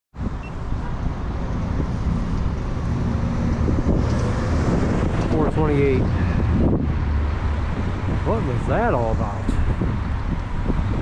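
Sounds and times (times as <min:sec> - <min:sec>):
road traffic rumble: 0:00.2 - 0:11.0
wind on microphone: 0:00.2 - 0:11.0.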